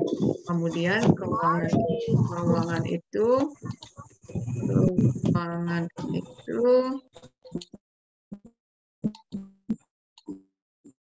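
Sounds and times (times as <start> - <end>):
clipped fragments of woman's voice: 0.0 - 7.8.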